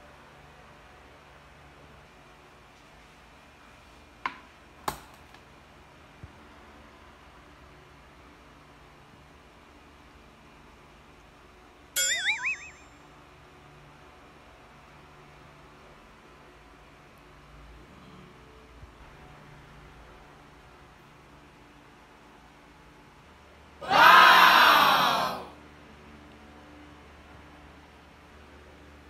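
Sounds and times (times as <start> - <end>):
cartoon boing sound effect: 12.0 - 13.0
loud drawn-out voice call: 23.8 - 25.6.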